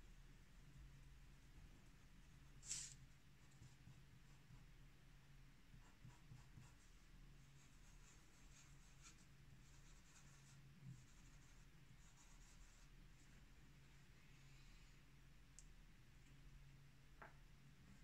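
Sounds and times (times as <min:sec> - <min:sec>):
low steady hum: 0:00.0 - 0:18.0
pen nib scratching on paper: 0:05.8 - 0:06.8.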